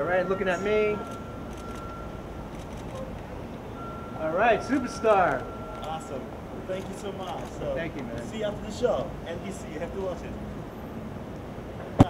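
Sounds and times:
low rumble of vehicles: 0.0 - 12.0
thin steady high tone: 3.7 - 6.8.

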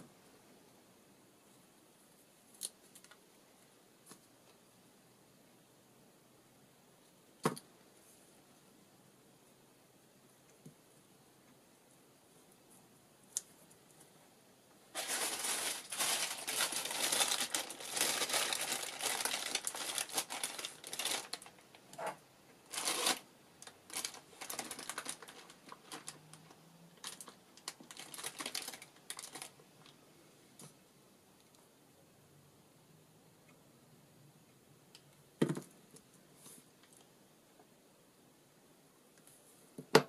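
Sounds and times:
paper or plastic crinkling: 14.9 - 29.6.

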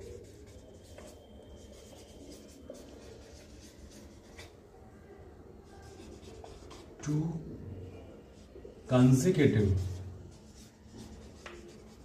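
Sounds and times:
marker squeaking on whiteboard: 0.0 - 4.6, 5.8 - 7.1, 9.6 - 12.0.

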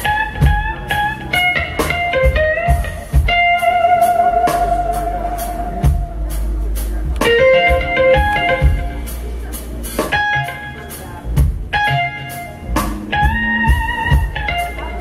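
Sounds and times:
blues band playing: 0.0 - 15.0.

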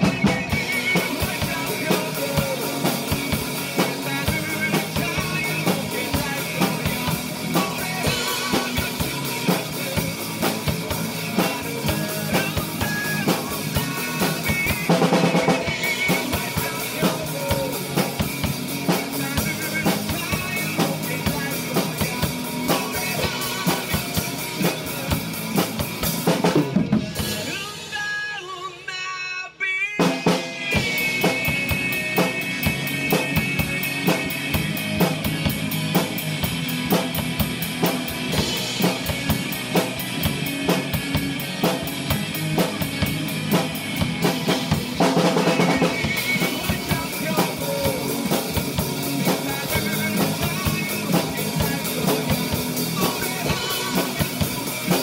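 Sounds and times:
drum kit playing rock beat: 0.0 - 28.9, 29.8 - 55.0
rock backing track: 0.0 - 28.9, 29.5 - 55.0.

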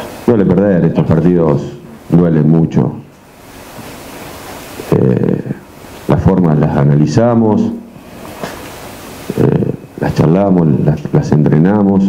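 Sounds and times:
steady background hiss: 0.0 - 12.0
man speaking: 0.3 - 3.1, 4.9 - 7.9, 9.3 - 12.0.

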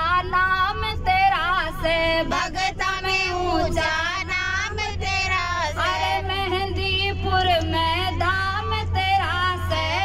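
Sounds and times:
steady low hum: 0.0 - 10.0
woman singing into a microphone: 0.0 - 10.0.

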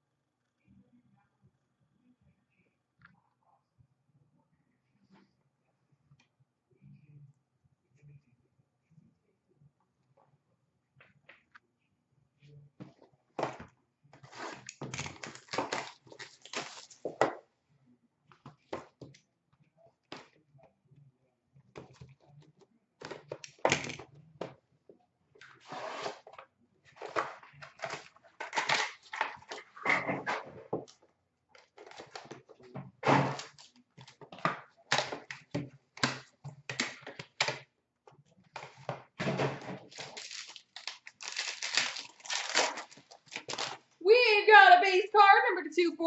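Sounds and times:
cardboard and wrapper tearing: 14.3 - 17.1, 39.8 - 43.8.

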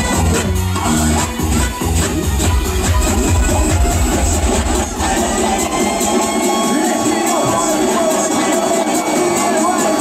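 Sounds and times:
electronic dance music: 0.0 - 10.0
heavy pounding bass beat: 0.2 - 8.1.

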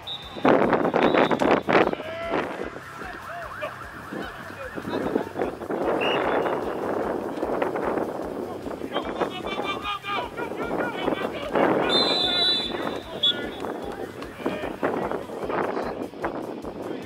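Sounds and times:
people shouting and yelling: 0.0 - 16.2.

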